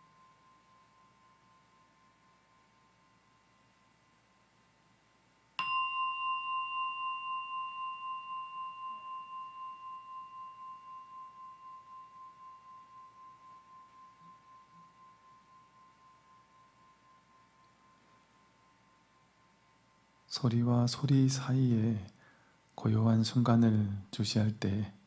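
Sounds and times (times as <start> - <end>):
meditation bell ringing: 0.0 - 4.3, 5.6 - 22.4.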